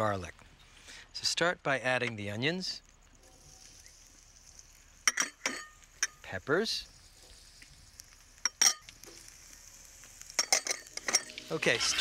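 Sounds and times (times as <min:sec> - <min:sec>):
vegetables sizzling in oil: 0:02.8 - 0:12.0.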